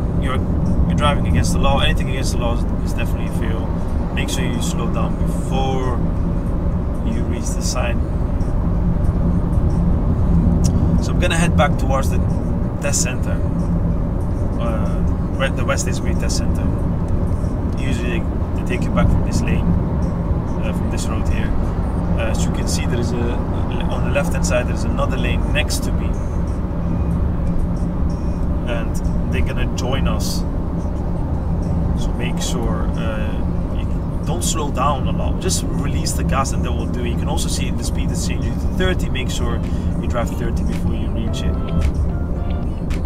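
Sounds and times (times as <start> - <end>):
car engine and tyre road noise: 0.0 - 43.0
constant low hum: 0.0 - 43.0.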